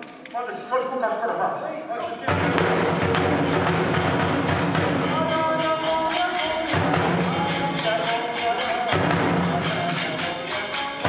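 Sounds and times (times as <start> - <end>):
person speaking: 0.0 - 3.0
rapid hand-cymbal strikes: 2.2 - 11.0
taiko drum: 2.3 - 11.0.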